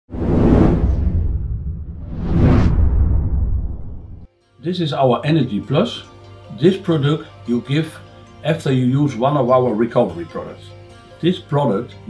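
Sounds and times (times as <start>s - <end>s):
deep rumble: 0.1s - 4.3s
whoosh sound effect: 0.1s - 4.3s.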